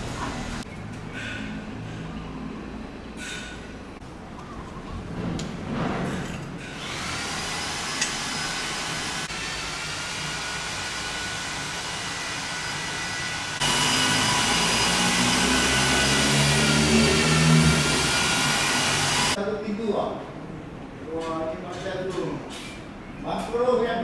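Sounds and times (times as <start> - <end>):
high machine whines: 6.8 - 19.4.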